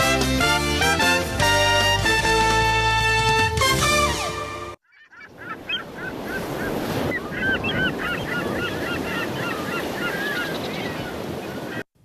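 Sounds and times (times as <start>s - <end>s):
gulls calling: 4.2s - 11.9s
surf washing: 5.6s - 11.9s.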